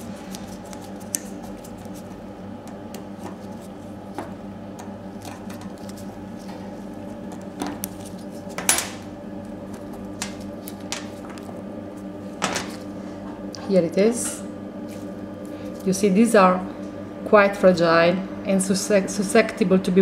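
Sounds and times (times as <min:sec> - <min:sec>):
steady electrical hum: 0:00.0 - 0:20.0.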